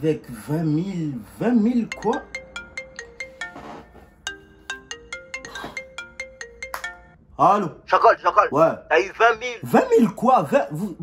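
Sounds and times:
phone ringtone melody: 0:01.5 - 0:07.2.

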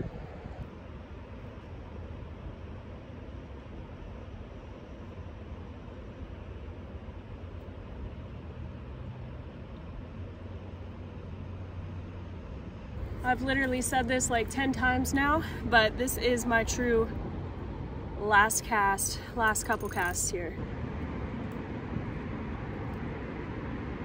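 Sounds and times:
wind on microphone: 0:00.0 - 0:00.7.

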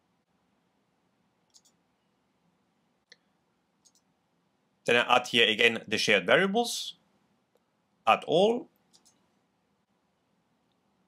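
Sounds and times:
computer mouse clicks: 0:01.4 - 0:01.8, 0:03.1 - 0:04.1, 0:08.8 - 0:09.4.

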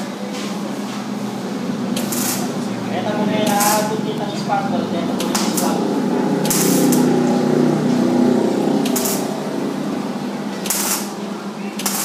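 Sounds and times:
welding arc crackling and buzzing: 0:01.1 - 0:11.2, 0:11.8 - 0:12.0.

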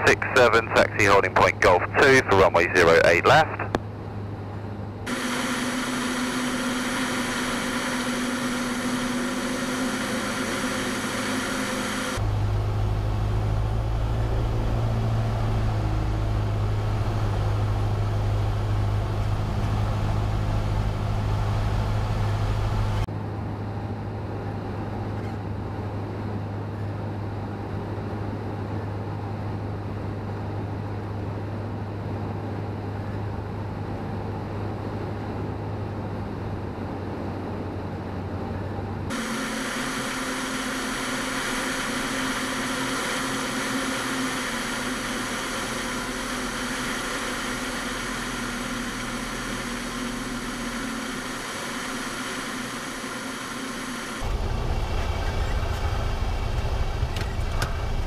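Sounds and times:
aircraft engine and propeller droning: 0:00.0 - 0:58.0
deep rumble: 0:12.2 - 0:23.1, 0:54.2 - 0:58.0.

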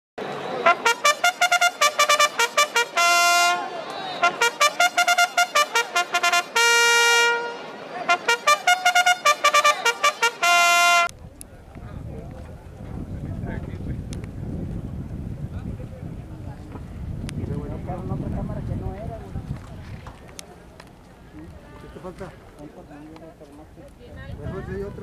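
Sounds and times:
trumpet-like horn fanfare: 0:00.6 - 0:11.1.

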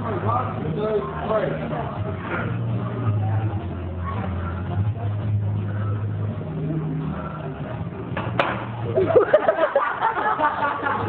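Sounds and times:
background noise: 0:00.0 - 0:11.0.

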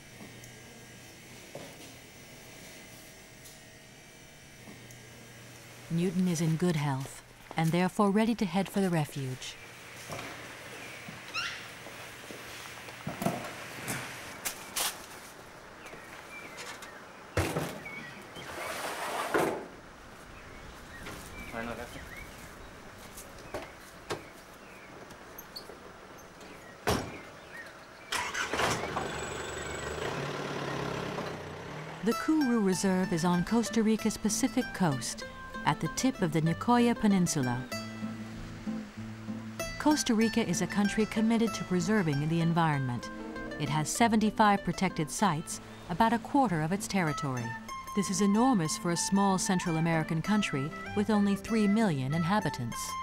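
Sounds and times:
truck engine starting and idling: 0:28.0 - 0:32.2.

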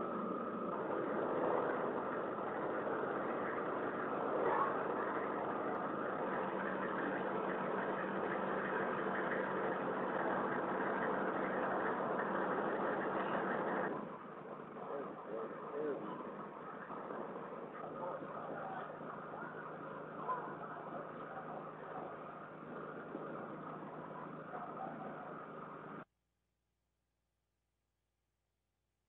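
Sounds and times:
engine humming: 0:00.0 - 0:26.0.

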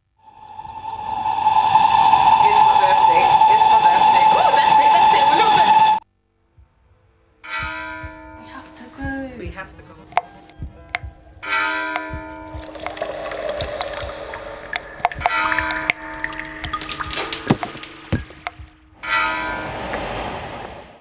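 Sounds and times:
sharp drips and clicks: 0:00.0 - 0:04.8, 0:10.1 - 0:11.2, 0:11.8 - 0:19.0
bell-like held tones: 0:00.2 - 0:06.0, 0:10.0 - 0:19.7
running water: 0:11.8 - 0:20.8.

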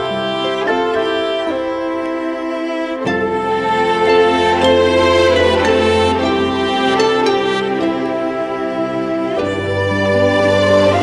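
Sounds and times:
slow instrumental christmas music: 0:00.0 - 0:11.0.

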